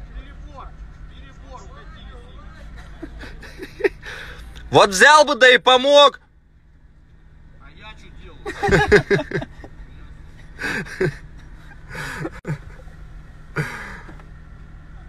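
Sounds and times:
steady low hum: 0.0s - 5.0s, 6.1s - 15.0s.

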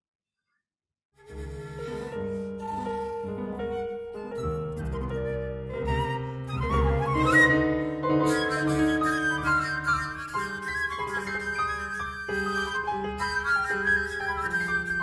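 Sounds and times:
flute melody: 1.2s - 15.0s
piano playing: 1.2s - 15.0s.

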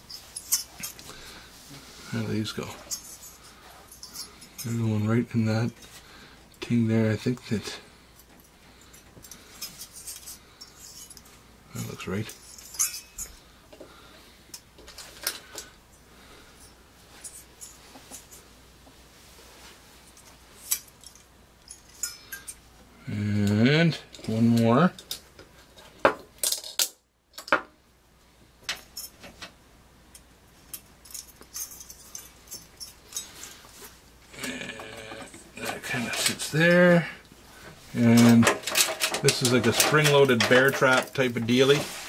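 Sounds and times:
man talking: 2.0s - 2.9s, 4.6s - 5.8s, 6.6s - 7.8s, 11.7s - 12.4s, 23.0s - 25.0s, 34.4s - 37.2s, 37.9s - 38.6s, 39.2s - 41.9s
metallic clicks and rattles: 38.1s - 41.6s.

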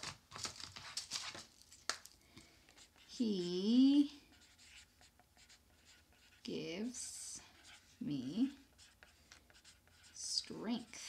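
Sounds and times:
marker scratching on paper: 2.7s - 11.0s.

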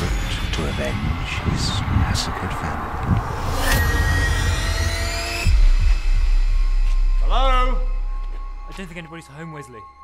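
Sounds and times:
rising tonal swell: 0.0s - 8.6s.

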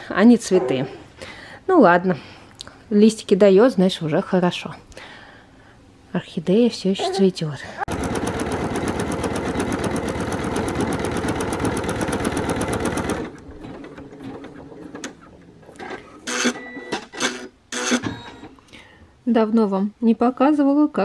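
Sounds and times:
embroidery machine stitching: 7.9s - 18.4s.

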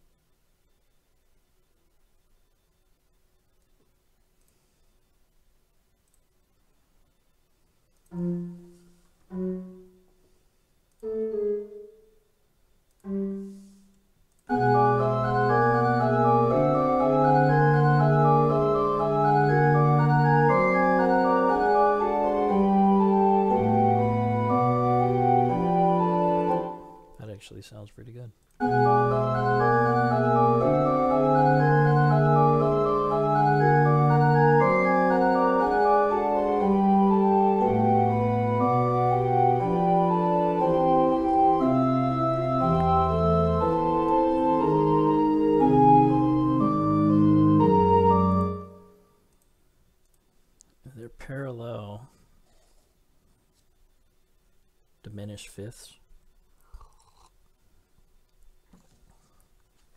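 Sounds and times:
synthesized pipe organ fugue: 8.1s - 10.2s, 11.0s - 12.1s, 13.0s - 13.8s, 14.5s - 27.9s, 28.6s - 49.0s.

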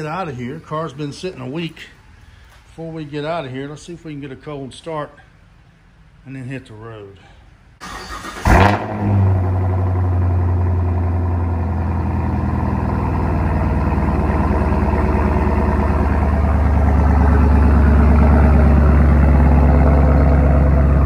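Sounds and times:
car engine starting and idling: 7.8s - 21.0s.

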